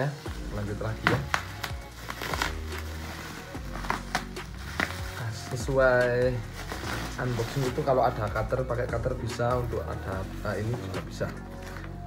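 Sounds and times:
background music: 0.0 - 12.0
scissors cutting bubble wrap: 0.0 - 12.0.

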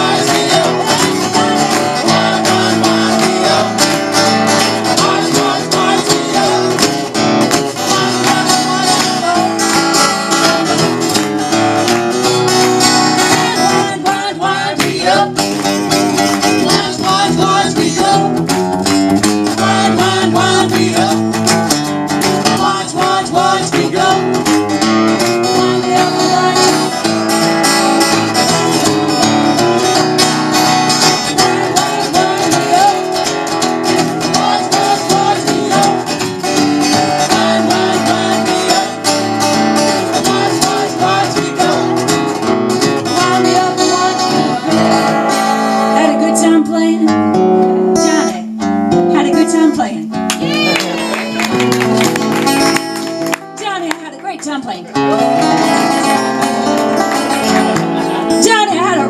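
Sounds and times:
people singing: 0.0 - 11.7, 13.0 - 18.6, 19.2 - 30.1, 30.7 - 46.2
strummed guitars: 0.0 - 59.0.

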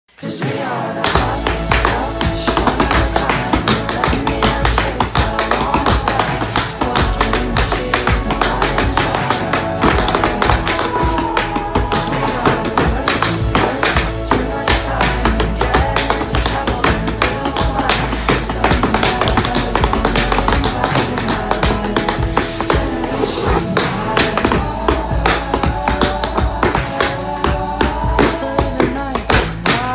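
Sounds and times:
loud song with steady beat: 0.2 - 29.9
tap shoes on hardwood floor: 1.0 - 29.9.

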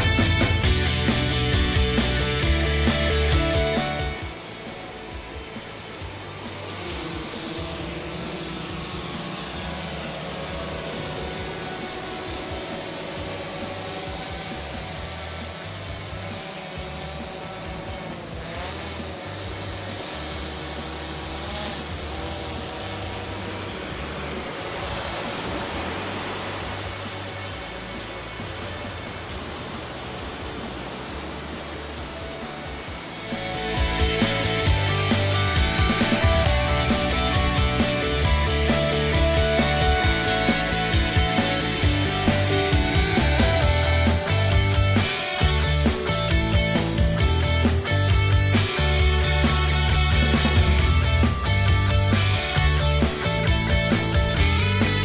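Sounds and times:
background music: 0.0 - 55.0
drone propellers whining: 0.0 - 55.0.

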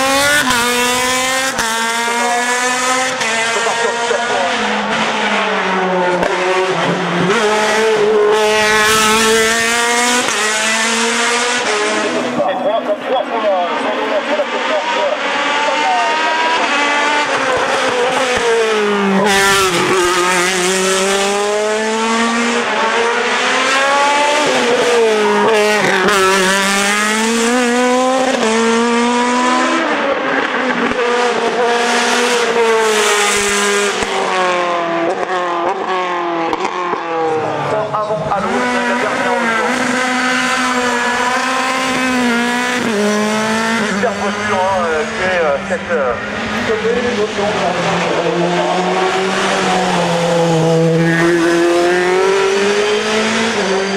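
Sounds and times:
race car engine revving: 0.0 - 53.9.

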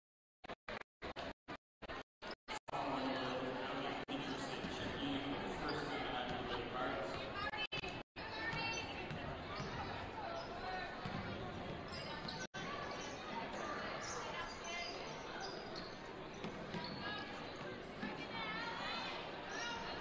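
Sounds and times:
voices of spectators and players: 0.7 - 20.0.

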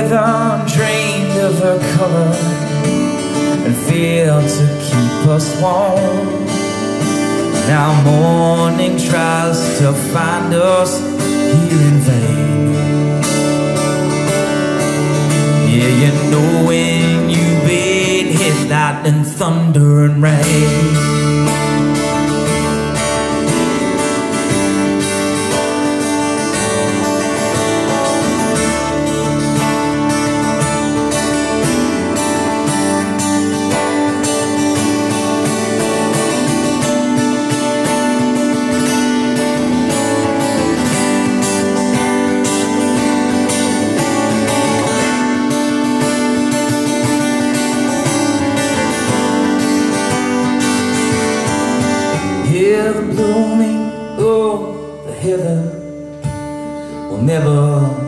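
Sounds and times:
acoustic guitar strummed: 0.0 - 58.0
electric guitar lead line: 0.0 - 58.0.

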